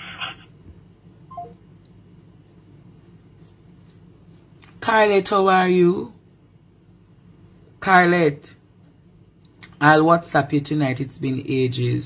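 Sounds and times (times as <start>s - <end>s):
faint low hum: 0.0s - 12.0s
descending electronic beeps: 1.3s - 1.6s.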